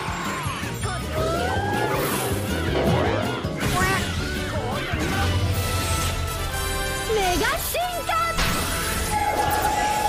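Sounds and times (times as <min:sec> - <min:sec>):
dramatic background music: 0:00.0 - 0:10.0.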